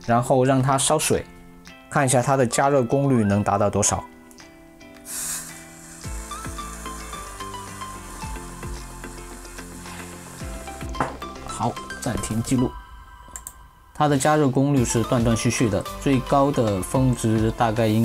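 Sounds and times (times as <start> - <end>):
hot soldering iron sizzling in water: 5.0 - 12.2.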